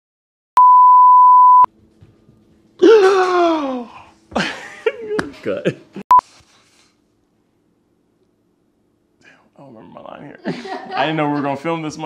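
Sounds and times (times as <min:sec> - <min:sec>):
faint room hum: 0:01.7 - 0:12.0
man sighing oh: 0:02.8 - 0:04.2.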